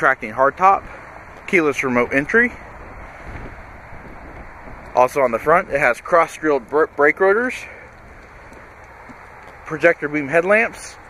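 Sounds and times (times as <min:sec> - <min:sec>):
low rumble: 0:00.8 - 0:06.8
wind on microphone: 0:02.3 - 0:05.8.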